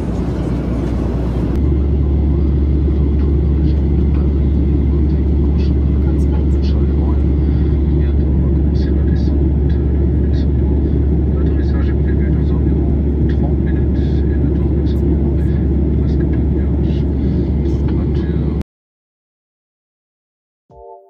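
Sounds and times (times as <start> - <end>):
aircraft cabin engine roar: 0.0 - 18.6.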